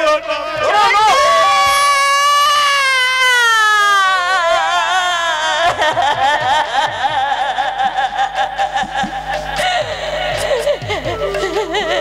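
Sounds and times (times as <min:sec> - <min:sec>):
woman wailing: 0:00.8 - 0:12.0.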